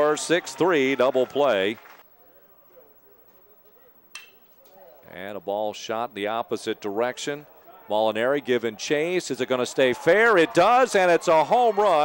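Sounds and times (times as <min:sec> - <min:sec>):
background murmur: 0:06.2 - 0:12.0.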